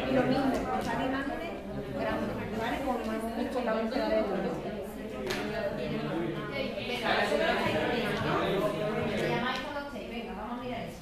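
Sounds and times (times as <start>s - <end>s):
children talking indistinctly: 0.0s - 11.0s.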